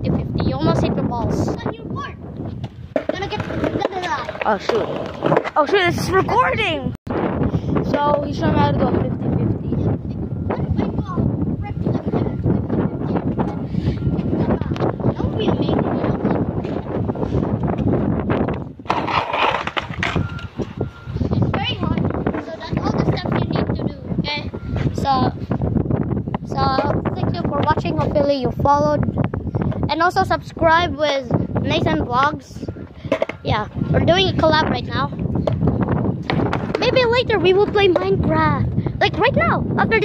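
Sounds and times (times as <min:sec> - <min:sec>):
boys' voices: 0:00.0 - 0:02.4, 0:03.0 - 0:07.0, 0:07.6 - 0:16.9, 0:21.2 - 0:25.6, 0:26.3 - 0:35.2, 0:36.6 - 0:40.0
wind on microphone: 0:00.0 - 0:40.0
skateboard clattering on concrete: 0:02.9 - 0:05.8, 0:18.8 - 0:20.5, 0:33.1 - 0:33.4, 0:36.2 - 0:38.2.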